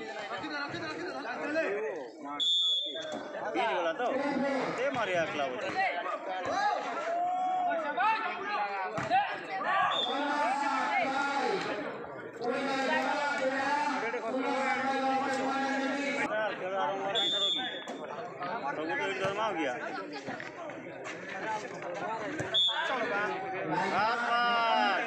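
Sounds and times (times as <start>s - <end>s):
crowd shouting and talking: 0.0s - 25.0s
referee's whistle: 2.4s - 3.2s, 9.8s - 10.2s, 17.1s - 17.9s, 22.5s - 23.0s.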